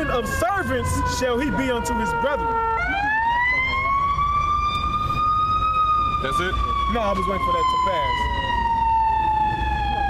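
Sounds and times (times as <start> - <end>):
emergency siren wailing: 0.0 - 10.0.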